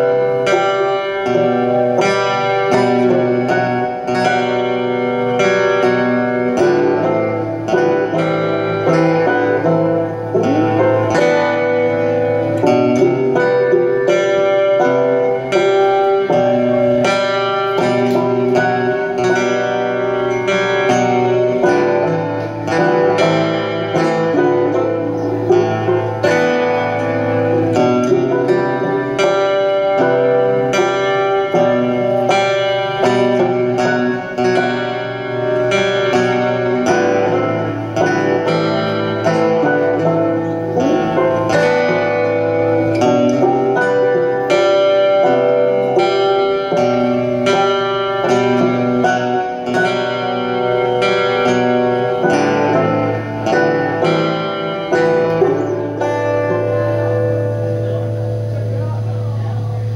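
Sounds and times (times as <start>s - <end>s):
acoustic guitar: 0.0s - 59.9s
banjo: 0.0s - 59.9s.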